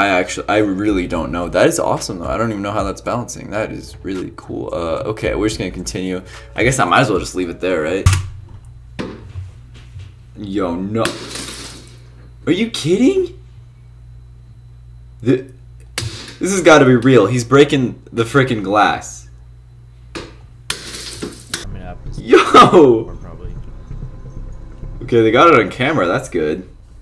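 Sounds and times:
heavy thud with deep boom: 0:21.7 - 0:27.0.

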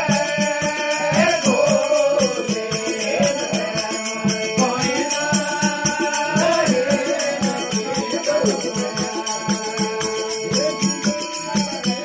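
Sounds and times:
harmonium: 0:00.0 - 0:12.0
man singing devotional song: 0:00.0 - 0:12.0
rhythmic metallic jingle: 0:00.0 - 0:12.0.

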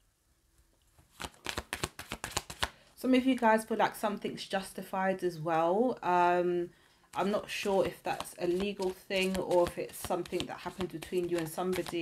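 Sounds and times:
cards being shuffled: 0:01.0 - 0:02.8, 0:07.2 - 0:12.0.

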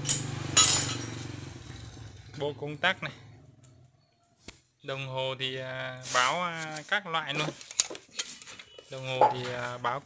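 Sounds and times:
clinking rattle: 0:00.0 - 0:01.1.

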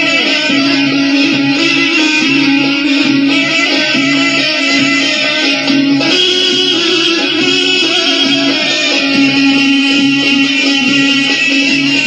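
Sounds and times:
plucked string instrument melody: 0:00.0 - 0:12.0.

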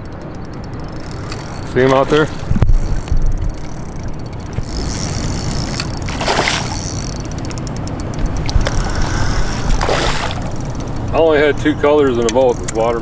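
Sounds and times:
steady low rumble: 0:00.0 - 0:13.0
fish splashing at surface: 0:06.1 - 0:06.8, 0:08.5 - 0:10.6.

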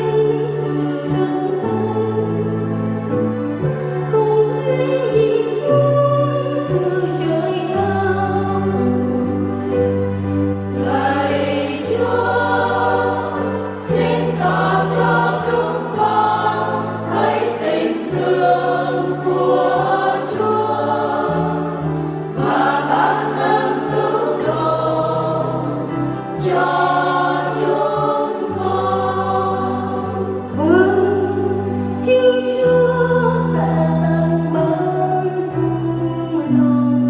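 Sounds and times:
church choir singing: 0:00.0 - 0:37.0
instrumental accompaniment: 0:00.0 - 0:37.0.

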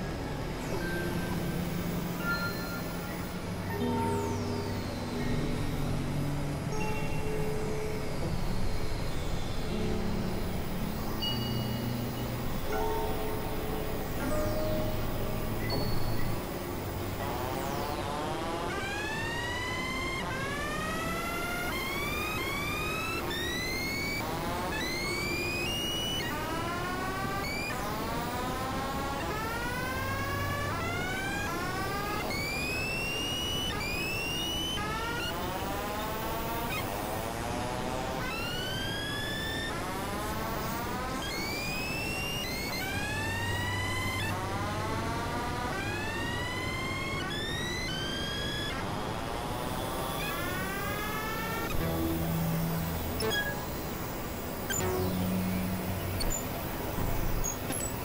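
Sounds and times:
upward sweeping synthesizer tones: 0:09.6 - 0:58.0
constant hiss: 0:29.2 - 0:58.0.

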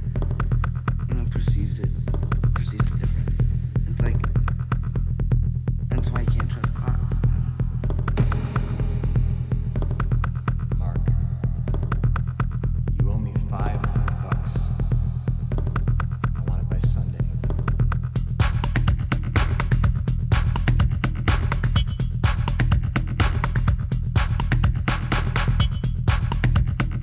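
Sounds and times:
fast clicking percussion: 0:00.0 - 0:05.2, 0:09.7 - 0:12.8, 0:13.5 - 0:27.0
deep bass line: 0:00.0 - 0:27.0.

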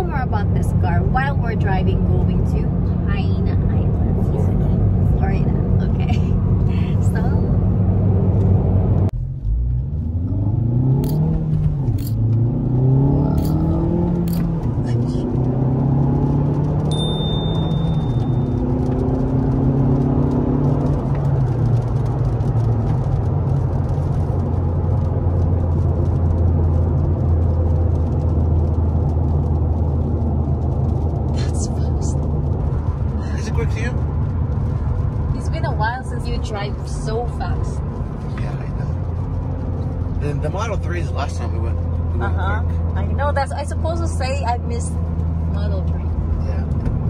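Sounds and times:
car engine accelerating through gears: 0:00.9 - 0:47.0.

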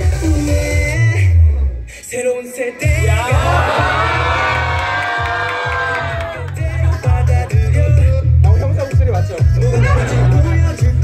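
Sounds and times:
dance music with heavy bass: 0:00.0 - 0:11.0
audience cheering and whooping: 0:03.0 - 0:07.0.

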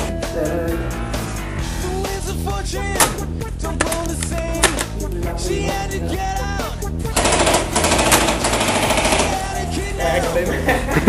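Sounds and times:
airsoft rifle full-auto burst: 0:07.2 - 0:09.6.

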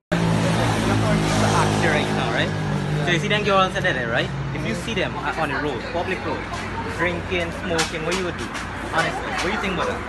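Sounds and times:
voices talking: 0:00.2 - 0:10.0.

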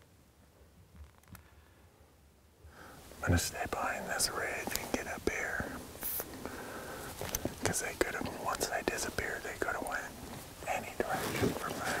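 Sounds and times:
man whispering: 0:03.2 - 0:06.3, 0:07.5 - 0:12.0.

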